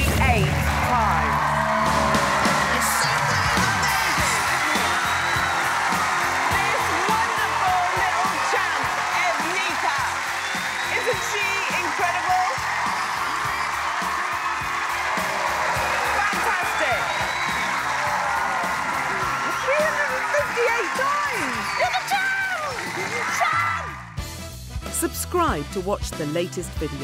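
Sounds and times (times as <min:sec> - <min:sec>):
studio audience cheering and whooping: 0:00.0 - 0:24.2
upbeat show music: 0:00.0 - 0:27.0.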